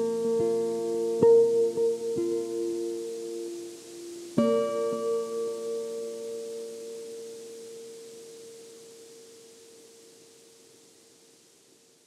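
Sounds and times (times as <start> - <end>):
acoustic guitar chord ringing: 0.0 - 9.8.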